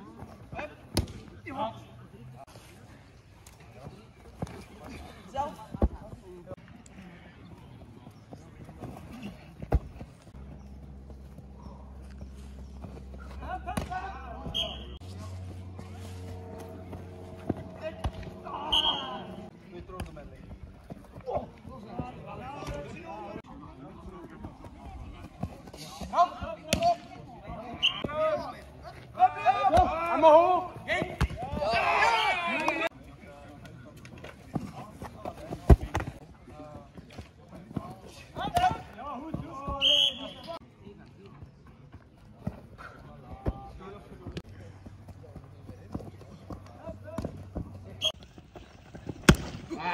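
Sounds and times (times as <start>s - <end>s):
faint voices: 0.0s - 48.2s
players shouting: 16.2s - 19.5s, 27.6s - 32.9s
ball thudding on grass: 49.1s - 49.6s.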